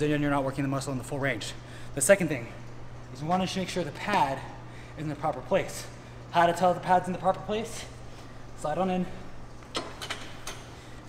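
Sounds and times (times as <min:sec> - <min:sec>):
knocks and clicks of gym machine: 0:09.6 - 0:10.8.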